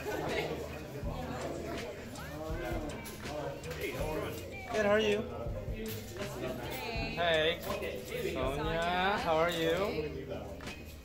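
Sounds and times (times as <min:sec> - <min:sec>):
people talking indistinctly: 0:00.0 - 0:11.0.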